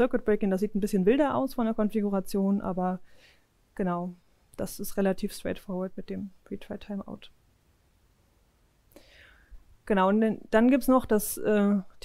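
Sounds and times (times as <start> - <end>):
woman speaking: 0.0 - 3.0, 3.8 - 7.4, 9.8 - 12.0
faint breath-like hiss: 3.0 - 4.6, 8.8 - 9.7.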